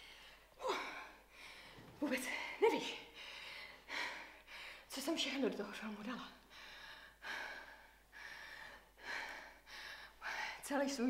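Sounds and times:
woman breathing heavily: 0.0 - 4.9, 6.4 - 10.8.

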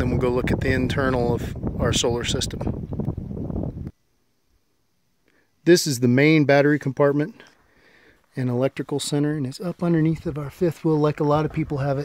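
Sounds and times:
wind buffeting microphone: 0.0 - 3.9, 10.0 - 12.0.

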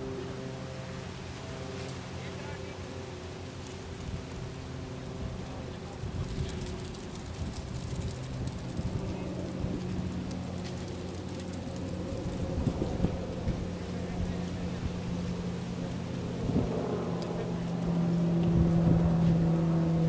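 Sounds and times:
wind buffeting microphone: 5.1 - 20.0.

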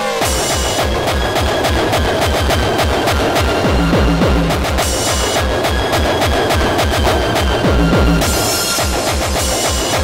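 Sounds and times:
fast kick-drum beat: 0.2 - 10.0.

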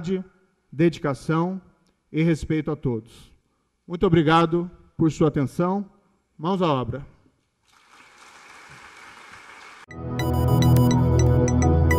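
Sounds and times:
audience applauding: 7.7 - 9.9.

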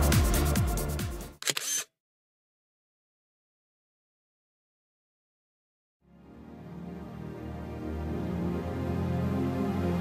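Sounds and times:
camera shutter click: 1.4 - 1.9.

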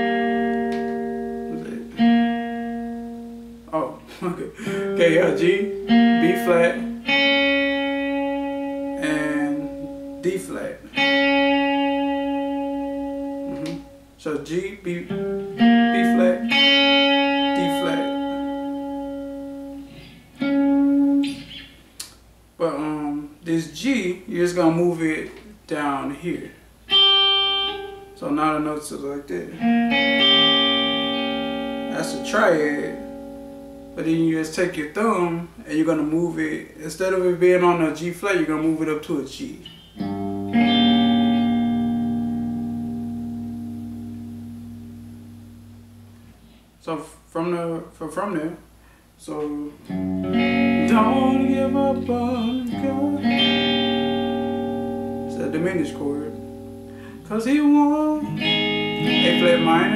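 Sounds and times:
electric guitar chord ringing: 0.0 - 23.8, 26.9 - 36.1, 39.6 - 46.7, 48.9 - 59.9.

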